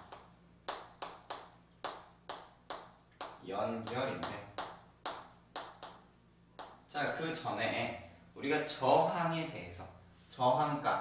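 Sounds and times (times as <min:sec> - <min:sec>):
chalk tapping on chalkboard: 0:00.0 - 0:06.9.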